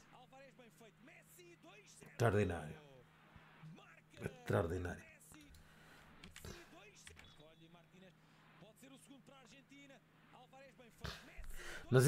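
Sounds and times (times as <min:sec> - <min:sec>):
faint football commentary: 0:06.4 - 0:12.0.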